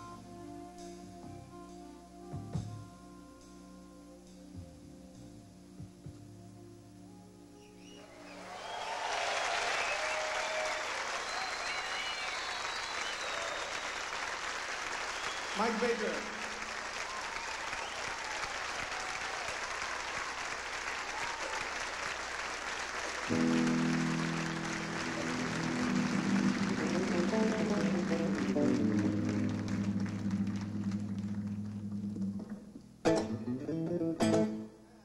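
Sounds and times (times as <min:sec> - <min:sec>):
audience applauding: 0:08.0 - 0:32.2
electronic keyboard chord: 0:23.3 - 0:32.5.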